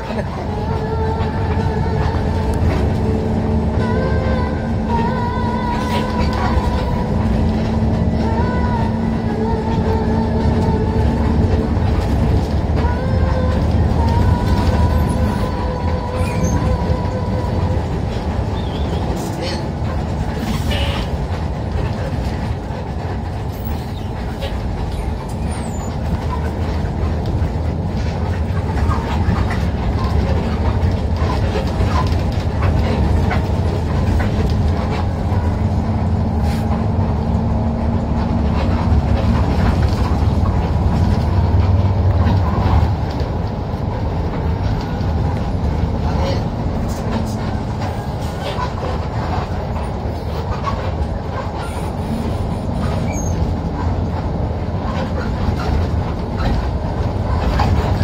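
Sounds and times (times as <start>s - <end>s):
bus engine and road rumble: 0.0s - 58.0s.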